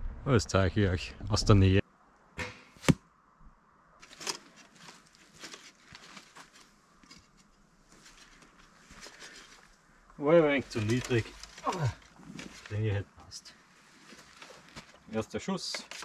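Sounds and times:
footsteps on forest floor: 0:04.0 - 0:09.8, 0:13.6 - 0:15.2.

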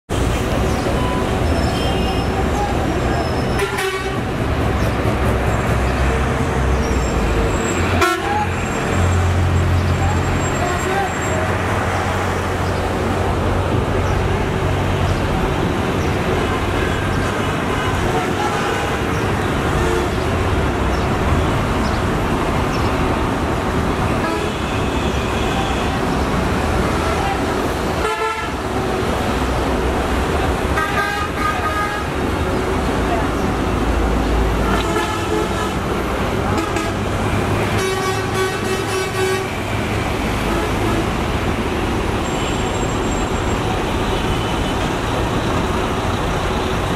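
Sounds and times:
road traffic: 0:00.0 - 0:46.9
vehicle horns tooting: 0:01.0 - 0:04.3, 0:07.6 - 0:09.0, 0:16.4 - 0:20.3, 0:24.1 - 0:26.2, 0:28.0 - 0:28.7, 0:30.7 - 0:32.2, 0:34.5 - 0:41.2.

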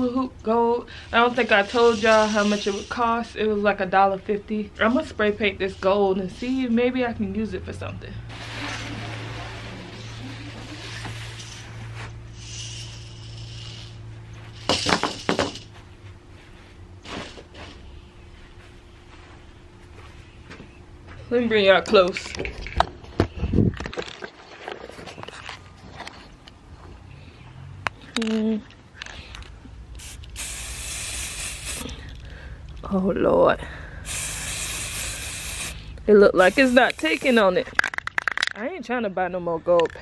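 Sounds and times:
aerosol spray can hissing: 0:01.4 - 0:03.1, 0:12.3 - 0:14.0, 0:30.0 - 0:32.1, 0:34.0 - 0:37.5
spray can clicks: 0:36.4 - 0:37.4.

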